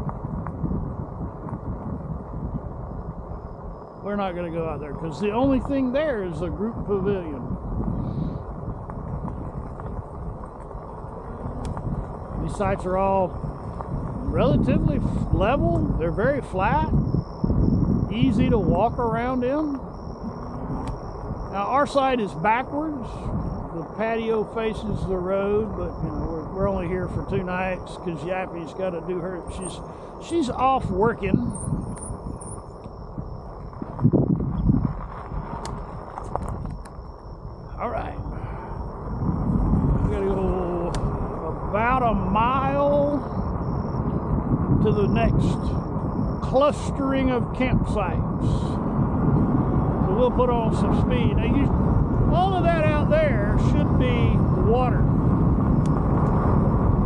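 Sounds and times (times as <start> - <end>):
bike tyres rumbling on rough road: 0.0 - 57.0.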